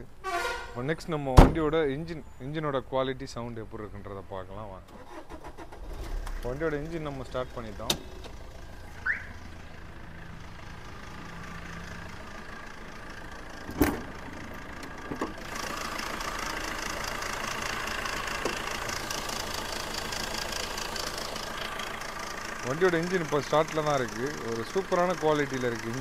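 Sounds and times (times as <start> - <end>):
diesel engine idling: 0.0 - 26.0.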